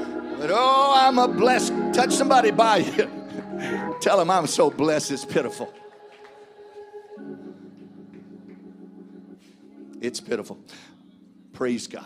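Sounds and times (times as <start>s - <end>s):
organ holding low chord: 0.0s - 12.0s.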